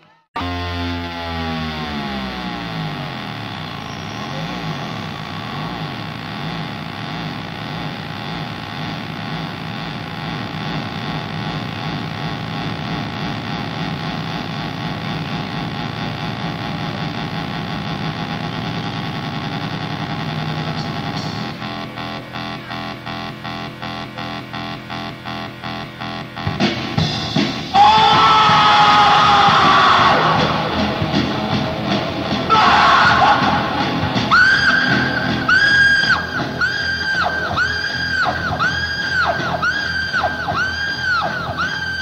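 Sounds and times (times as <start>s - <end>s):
synthesizer buzzing chord: 0.4s - 27.8s, 29.3s - 42.0s.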